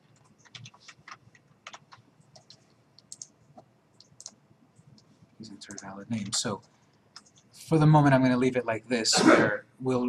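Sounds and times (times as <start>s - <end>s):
mouse and keyboard clicks: 0.2s - 3.4s.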